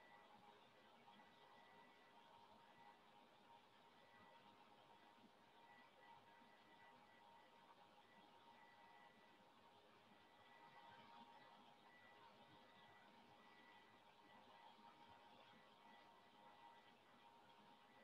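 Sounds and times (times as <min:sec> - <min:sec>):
faint high whine: 0:00.0 - 0:18.0.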